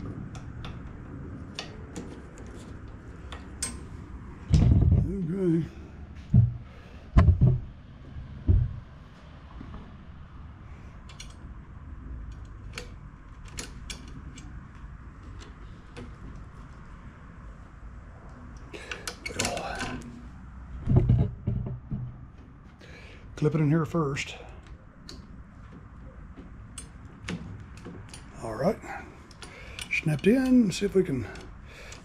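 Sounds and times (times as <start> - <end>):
mower parts thumping: 4.4 - 5.2, 6.2 - 7.8, 8.4 - 8.9, 20.8 - 22.2.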